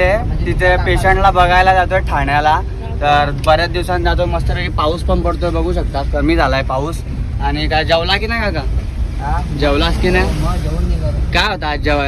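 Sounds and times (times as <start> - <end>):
car engine and tyres rumbling: 0.0 - 12.0
man talking: 0.0 - 12.0.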